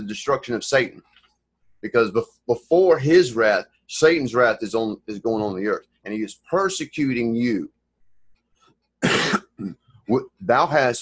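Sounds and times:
man coughing: 9.0s - 9.8s.

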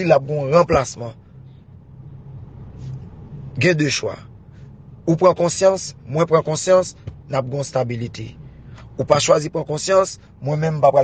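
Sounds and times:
man speaking: 0.0s - 1.2s, 3.6s - 4.3s, 5.1s - 11.0s
faint rumble: 0.0s - 11.0s
low steady hum: 0.0s - 11.0s.

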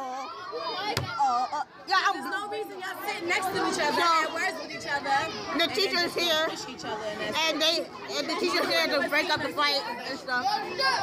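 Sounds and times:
young voices chattering: 0.0s - 11.0s.

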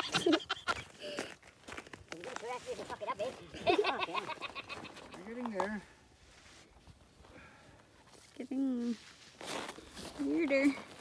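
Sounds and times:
people laughing: 0.0s - 1.1s, 3.5s - 5.1s.

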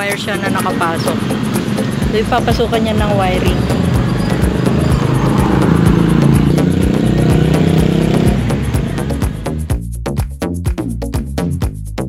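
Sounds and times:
vehicle engine humming: 0.0s - 9.8s
music with steady beat: 0.0s - 12.0s.

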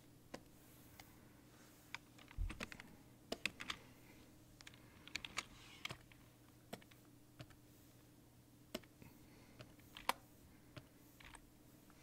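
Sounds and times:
faint steady hum: 0.0s - 12.0s
keyboard keys clicking: 4.6s - 7.6s.

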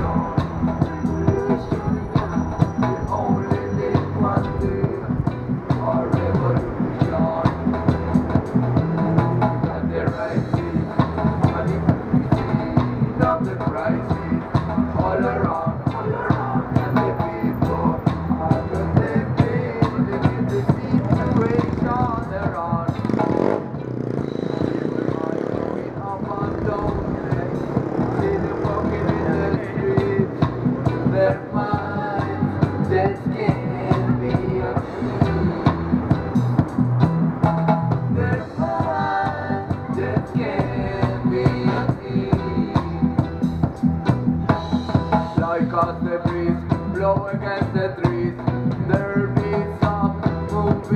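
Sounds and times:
keyboard: 0.0s - 50.9s
reggae band playing: 0.0s - 50.9s.

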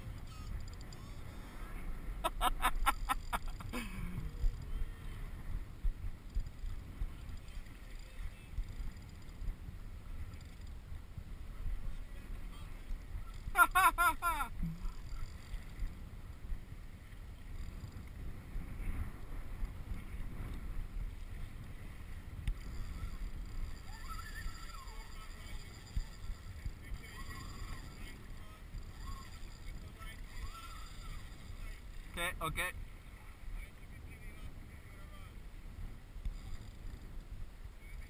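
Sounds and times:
wind noise on microphone: 0.0s - 38.0s.

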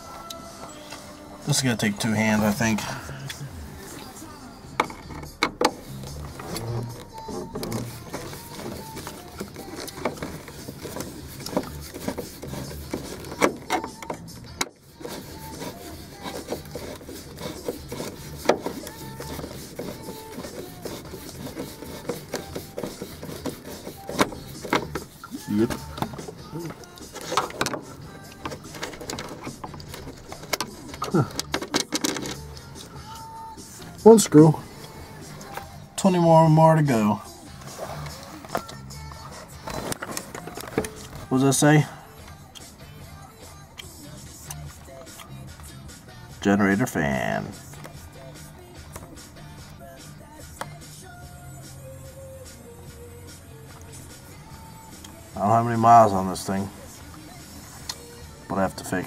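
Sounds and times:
background music: 0.0s - 59.0s
screwdriver clicking and scraping metal: 4.8s - 33.3s, 37.5s - 41.4s.

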